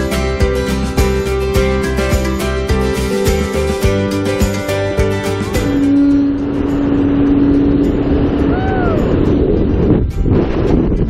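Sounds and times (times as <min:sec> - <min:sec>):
rising and falling tone: 0:00.0 - 0:10.8
wind buffeting microphone: 0:05.8 - 0:11.0.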